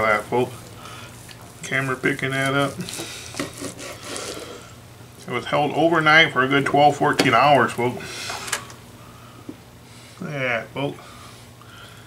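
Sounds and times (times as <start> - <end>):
knife sawing through meat: 2.9 - 4.6
blade rubbing on wooden board: 3.4 - 4.5.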